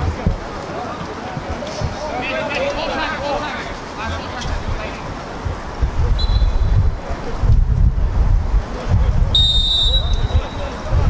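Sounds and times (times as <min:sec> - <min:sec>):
wind buffeting microphone: 0:00.0 - 0:11.0
referee's whistle blasts: 0:06.2 - 0:06.8, 0:09.3 - 0:10.7.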